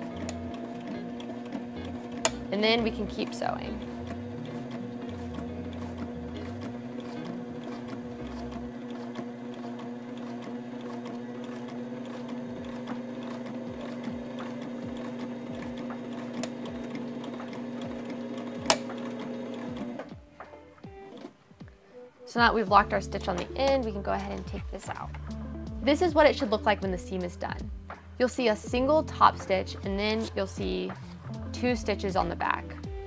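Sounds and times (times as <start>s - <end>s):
sewing machine stitching: 0.0s - 20.1s.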